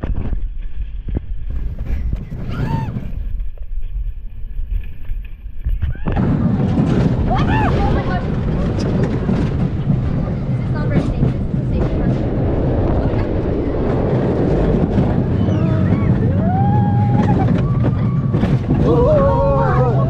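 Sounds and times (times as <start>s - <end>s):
roller coaster rumbling on track: 0.0s - 20.0s
riders shouting and yelling: 15.0s - 20.0s.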